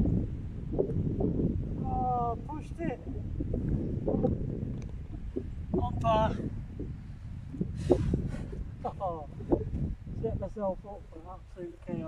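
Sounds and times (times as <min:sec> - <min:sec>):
wind buffeting microphone: 0:00.0 - 0:12.0
man talking: 0:01.8 - 0:03.2, 0:05.8 - 0:06.5
breathy puff: 0:07.8 - 0:08.6.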